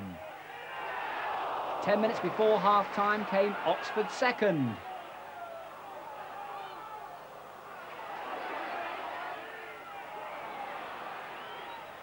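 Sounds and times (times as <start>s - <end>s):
stadium crowd hubbub: 0.0s - 12.0s.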